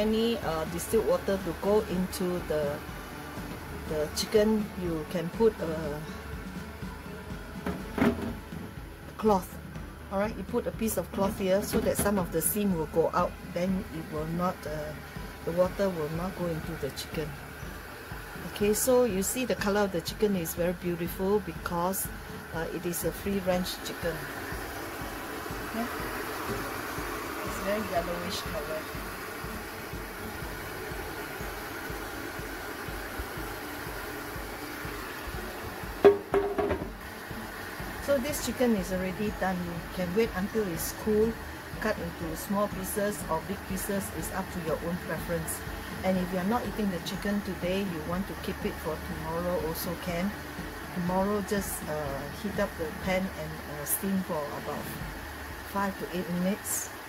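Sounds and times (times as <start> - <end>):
faint background music: 0.0 - 57.0
steady low hum: 0.0 - 57.0
kitchenware clattering: 36.0 - 37.0.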